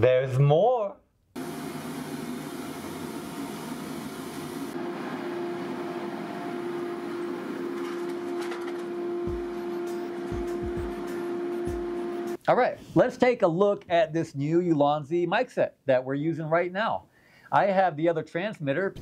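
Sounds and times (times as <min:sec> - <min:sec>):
machine humming: 0:01.4 - 0:12.4.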